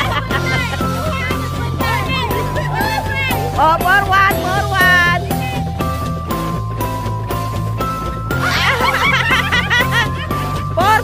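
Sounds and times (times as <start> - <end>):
person laughing in rapid bursts: 0.0 - 1.2, 8.4 - 10.3
background music: 0.0 - 11.0.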